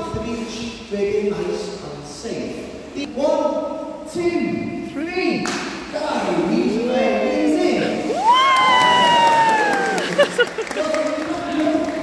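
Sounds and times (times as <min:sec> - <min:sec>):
high-pitched cheering shout: 0:08.1 - 0:10.4.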